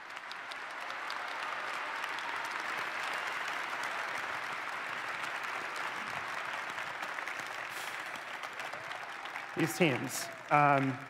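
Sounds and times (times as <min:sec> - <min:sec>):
large audience applauding: 0:00.0 - 0:11.0.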